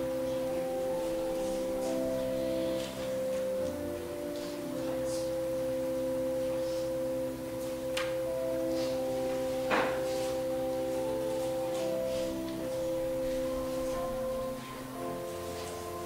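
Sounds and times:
soft keyboard chords: 0.0s - 16.0s.

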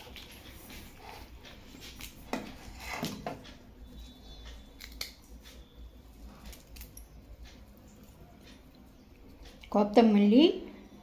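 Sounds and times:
spoon stirring in steel bowl: 0.0s - 3.6s.

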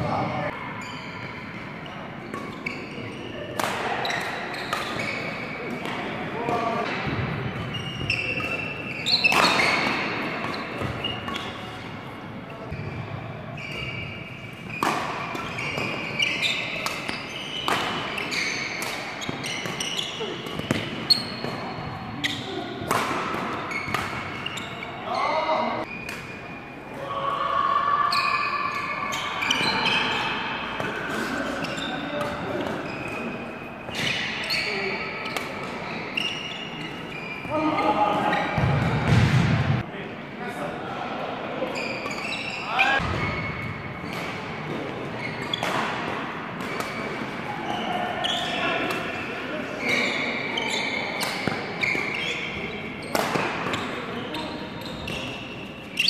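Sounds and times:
voices in a hall: 0.0s - 56.0s
shoes squeaking on floor: 0.1s - 5.7s, 7.5s - 11.8s, 12.5s - 26.7s, 31.0s - 38.7s, 41.7s - 45.9s, 46.6s - 48.8s, 49.7s - 56.0s
racket hitting shuttlecock: 3.6s - 5.1s, 6.8s - 11.6s, 14.6s - 21.7s, 22.8s - 24.5s, 45.4s - 47.3s, 53.1s - 54.0s.

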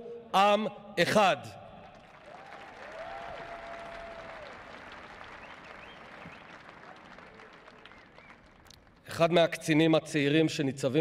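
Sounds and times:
large crowd applauding: 1.9s - 9.1s.

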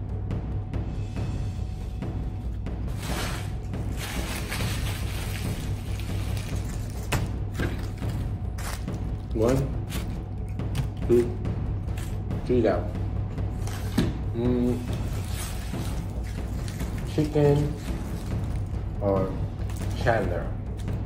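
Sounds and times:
background music with low bass: 0.0s - 21.0s
food wrappers crinkling: 3.0s - 7.2s.

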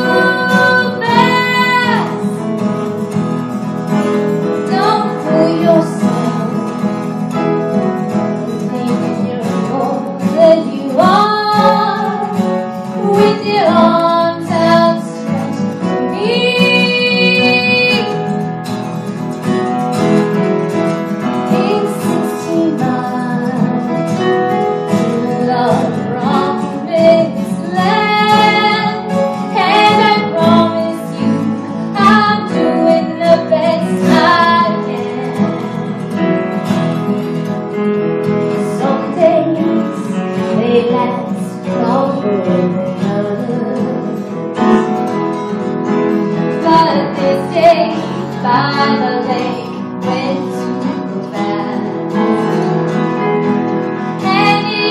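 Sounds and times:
woman singing: 0.0s - 2.6s, 4.4s - 7.1s, 8.5s - 18.3s, 21.2s - 36.2s, 38.5s - 44.9s, 46.3s - 52.6s, 54.1s - 54.9s
acoustic guitar: 0.0s - 54.9s.

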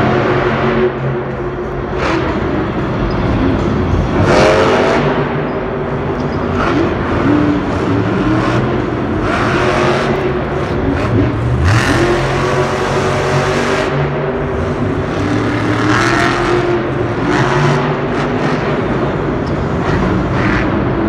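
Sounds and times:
truck engine revving hard: 0.0s - 21.0s.

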